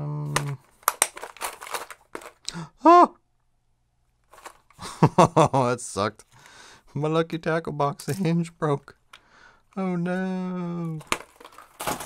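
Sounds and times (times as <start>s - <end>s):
person saying uh: 0.0s - 0.6s, 2.5s - 3.2s, 9.8s - 11.0s.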